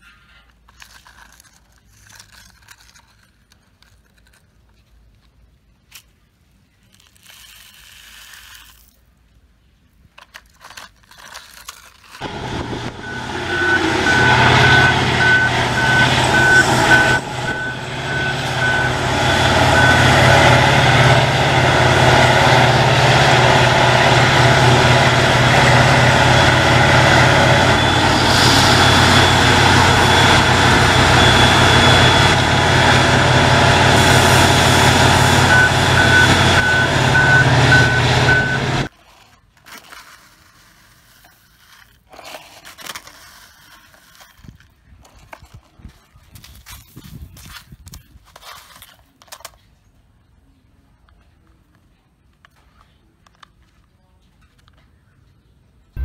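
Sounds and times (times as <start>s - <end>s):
heavy machinery engine drone: 12.2s - 38.9s
reversing alarm beeping: 12.2s - 38.9s.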